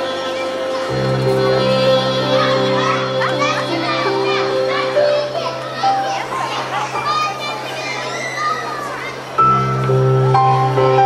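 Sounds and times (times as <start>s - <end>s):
violin: 0.0s - 7.4s
electric keyboard: 0.0s - 8.0s, 9.0s - 11.0s
children chattering and calling: 0.0s - 11.0s.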